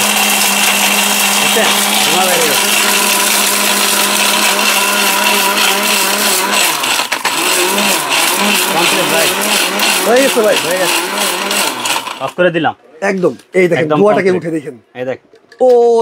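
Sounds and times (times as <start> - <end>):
mixer grinder grinding brick: 0.0 - 12.5.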